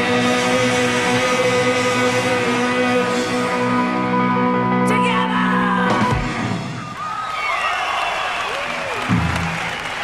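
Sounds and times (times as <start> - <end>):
audience applauding and cheering: 6.7 - 10.0.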